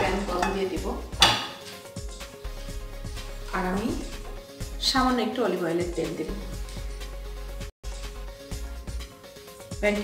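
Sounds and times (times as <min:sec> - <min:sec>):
frying pan clanking on grate: 0:01.2 - 0:01.7
light knocks of cookware: 0:01.2 - 0:01.8.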